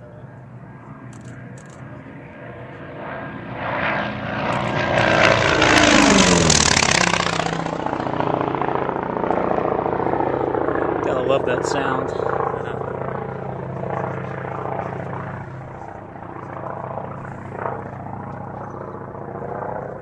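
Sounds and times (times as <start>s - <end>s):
aircraft engine passing low: 0.0s - 20.0s.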